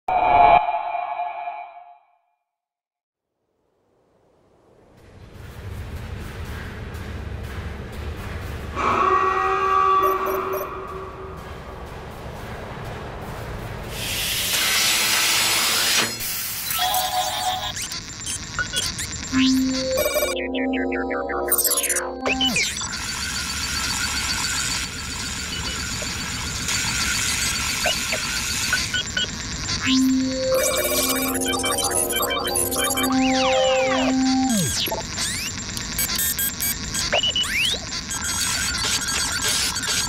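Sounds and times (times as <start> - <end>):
rapid electronic ticking: 10.0 - 14.4, 16.4 - 40.0
mechanical whirring hiss: 10.2 - 17.2
short electronic chirps: 16.8 - 23.0, 27.4 - 40.0.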